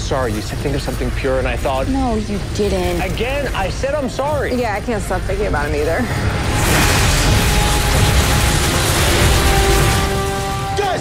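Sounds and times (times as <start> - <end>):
dense rushing noise: 0.0 - 11.0.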